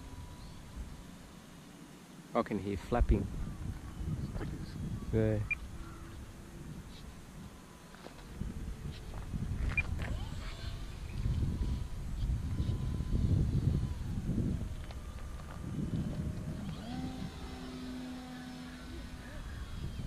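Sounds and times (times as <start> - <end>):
faint electric motor whine: 0.0 - 20.0
wind buffeting microphone: 2.8 - 20.0.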